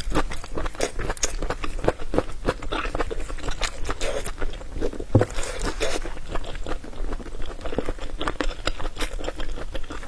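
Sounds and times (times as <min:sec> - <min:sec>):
close chewing with mouth clicks: 0:00.0 - 0:10.0.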